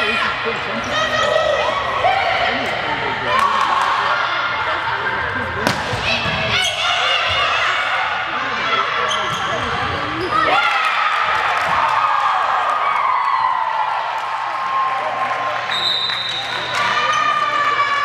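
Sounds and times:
volleyball being hit: 5.6 - 6.4
crowd cheering: 10.4 - 18.0.

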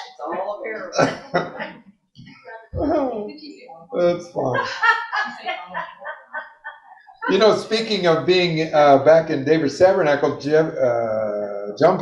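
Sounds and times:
man laughing into microphone: 0.9 - 1.5, 4.4 - 8.6.

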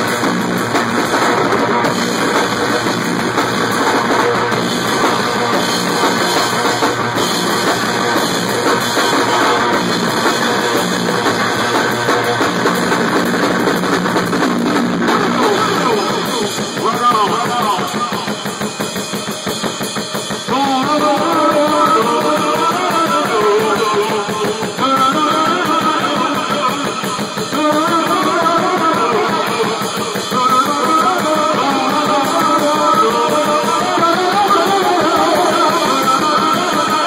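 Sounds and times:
fast dense drumming: 0.0 - 37.0.

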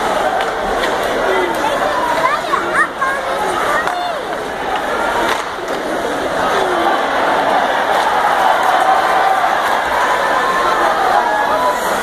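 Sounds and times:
crowd murmuring: 0.0 - 12.0
sharp clack: 5.2 - 5.8.

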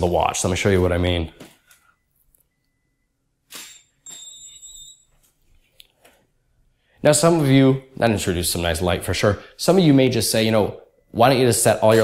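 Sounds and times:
flash recharging whine: 3.5 - 5.0.

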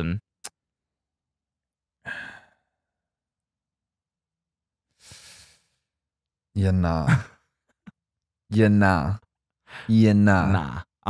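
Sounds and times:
person sighing: 2.0 - 2.7.

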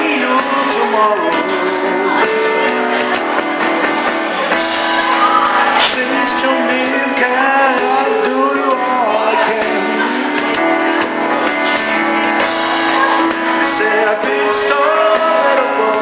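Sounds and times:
man singing soul ballad: 0.0 - 3.2, 5.5 - 11.9, 12.5 - 16.0
digital piano: 0.0 - 16.0.

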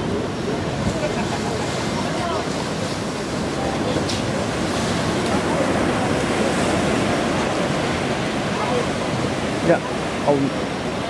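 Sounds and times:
ocean surf breaking on rock: 0.0 - 11.0.

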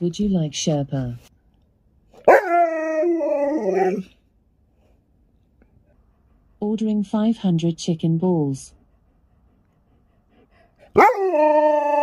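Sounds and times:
dog howling: 2.3 - 4.1, 10.9 - 12.0.

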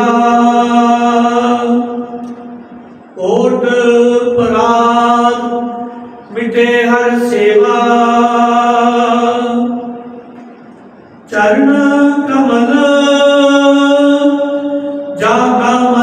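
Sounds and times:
man chanting melodically: 0.0 - 2.2, 3.2 - 10.1, 11.3 - 16.0.

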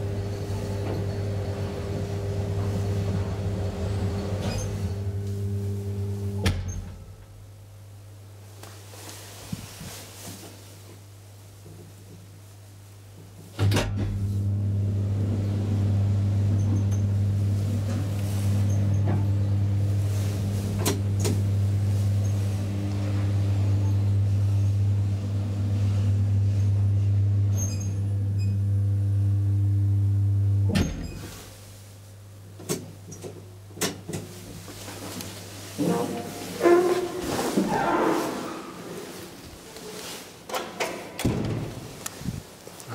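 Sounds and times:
elevator motor hum: 0.0 - 7.0, 14.2 - 31.1.

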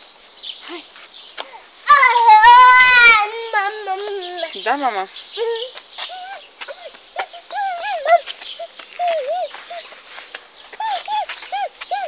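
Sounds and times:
toddler squealing and babbling: 1.9 - 4.6, 5.4 - 9.8, 10.8 - 12.0.

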